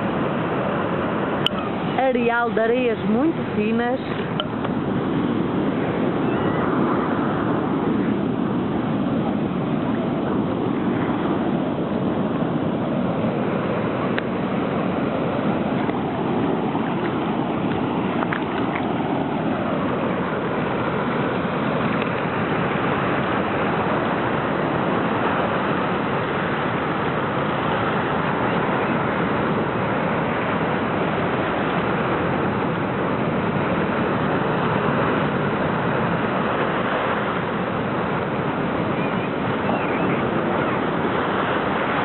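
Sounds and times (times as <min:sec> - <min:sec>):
surf breaking over rocks: 0:00.0 - 0:42.0.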